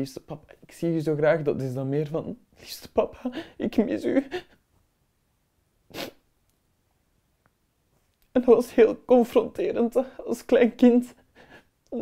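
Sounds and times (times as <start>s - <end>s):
sharp sniff: 5.9s - 6.2s.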